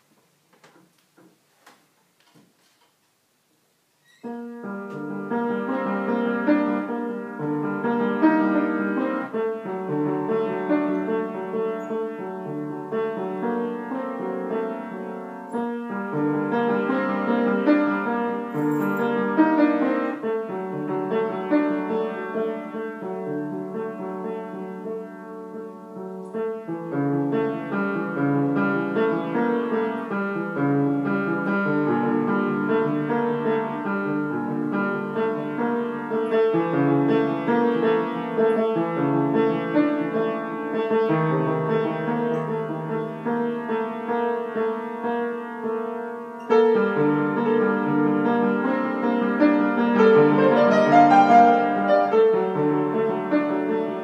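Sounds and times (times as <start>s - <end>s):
solo piano: 0.0s - 1.5s, 3.1s - 54.0s.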